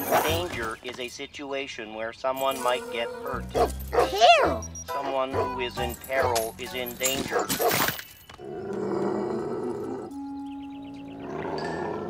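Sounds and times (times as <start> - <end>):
background music note: 2.4 - 7.1
cartoon dog growling: 2.8 - 4.6.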